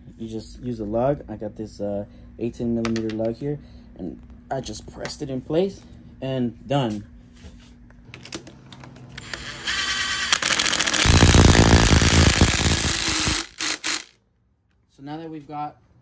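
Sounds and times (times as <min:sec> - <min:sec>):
impact driver rattling: 0:10.3 - 0:14.1.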